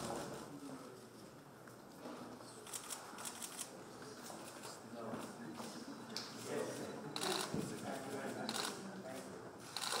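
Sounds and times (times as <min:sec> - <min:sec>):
faint voices murmuring: 0:00.0 - 0:10.0.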